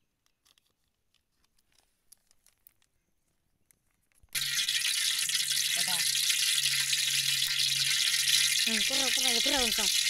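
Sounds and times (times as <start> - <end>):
fish frying in hot oil: 4.3 - 10.0.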